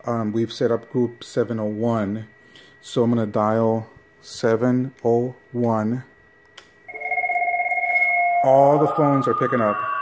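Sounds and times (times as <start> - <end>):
fluttering electronic tone: 6.9 - 10.0.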